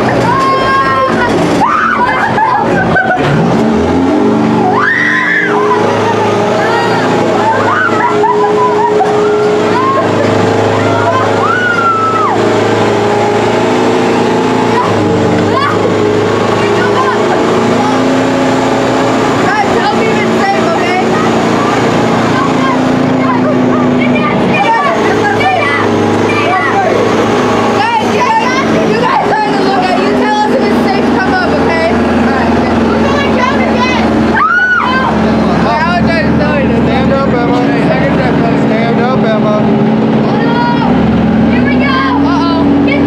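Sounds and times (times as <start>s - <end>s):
children calling out: 0.0s - 3.5s, 4.4s - 36.0s, 40.2s - 43.0s
tank engine running: 0.0s - 43.0s.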